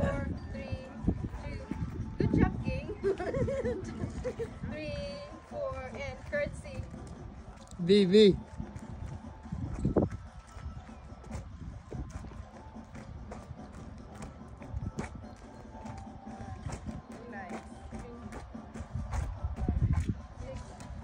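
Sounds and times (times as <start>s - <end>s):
footsteps on concrete: 0.9s - 21.0s.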